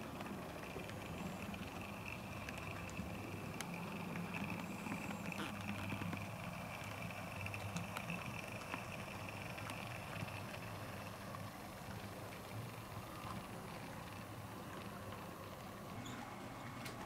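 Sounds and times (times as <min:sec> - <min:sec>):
model train motor hum: 0:00.0 - 0:17.0
wheels clicking on rails: 0:00.0 - 0:17.0.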